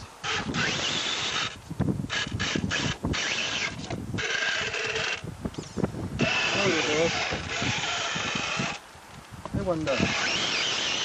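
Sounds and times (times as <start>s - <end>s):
small electric motor whining: 0.0s - 8.8s, 9.8s - 11.0s
outdoor hiss: 3.0s - 11.0s.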